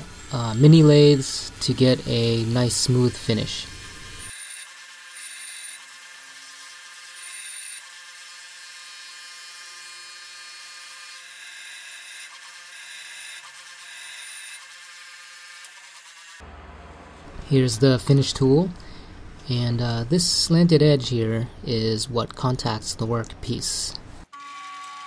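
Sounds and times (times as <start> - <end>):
bench grinder grinding steel: 0.0 - 16.5.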